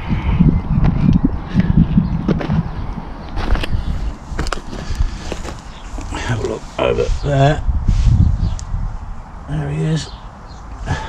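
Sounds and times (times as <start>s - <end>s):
camera handling rumble: 1.9s - 6.6s.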